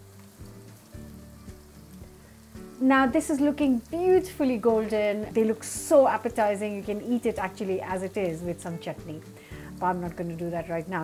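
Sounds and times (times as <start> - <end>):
food sizzling in oil: 0.0 - 11.0
quiet background music: 0.0 - 11.0
woman's voice: 2.8 - 11.0.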